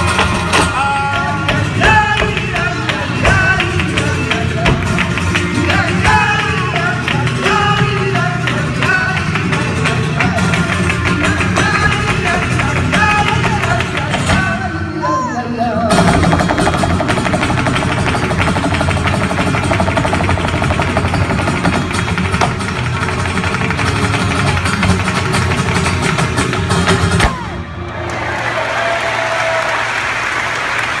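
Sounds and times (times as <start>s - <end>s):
flamenco footwork on stage: 0.0s - 14.8s, 15.9s - 27.5s
flamenco guitar: 0.0s - 27.8s
audience shouts: 27.2s - 31.0s
audience applause: 27.3s - 31.0s.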